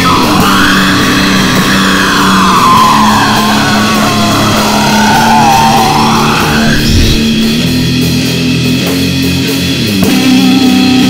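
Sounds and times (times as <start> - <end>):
sliding guitar lead line: 0.0 - 8.8
distorted electric guitars: 0.0 - 11.0.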